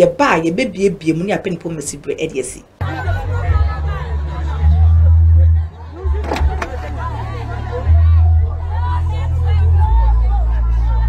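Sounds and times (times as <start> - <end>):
crowd shouting: 2.8 - 11.0.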